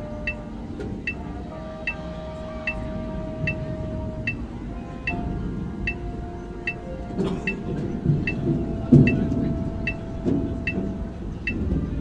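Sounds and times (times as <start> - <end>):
light high ticking: 0.0 - 12.0
steady held note: 0.0 - 12.0
deep drum hits: 2.8 - 12.0.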